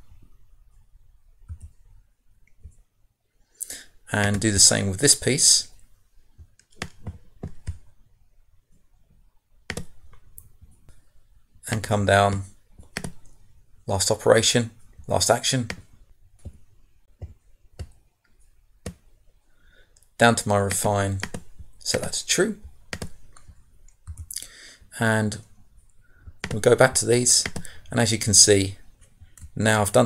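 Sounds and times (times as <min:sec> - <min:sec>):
computer mouse clicks: 0:01.5 - 0:02.8, 0:06.4 - 0:07.9, 0:09.7 - 0:11.0, 0:12.8 - 0:13.4, 0:20.7 - 0:24.4, 0:25.9 - 0:26.6, 0:27.4 - 0:27.9.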